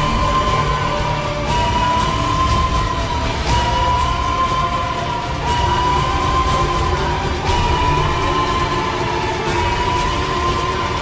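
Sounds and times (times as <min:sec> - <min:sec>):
high held rising tone: 0:00.0 - 0:11.0.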